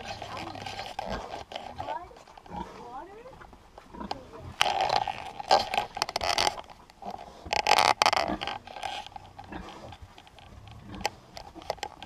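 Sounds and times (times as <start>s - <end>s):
piglets squealing and grunting: 0.0s - 3.0s.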